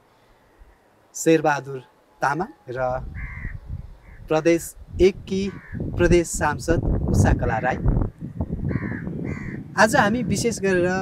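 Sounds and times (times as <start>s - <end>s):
man speaking: 1.2s - 3.1s, 4.3s - 7.9s, 9.8s - 11.0s
crow cawing: 3.1s - 4.3s, 5.4s - 5.9s, 8.6s - 9.7s.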